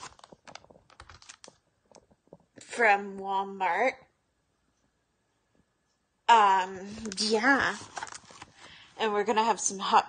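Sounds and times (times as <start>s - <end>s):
plastic packaging crackling: 0.0s - 2.3s, 6.9s - 8.8s.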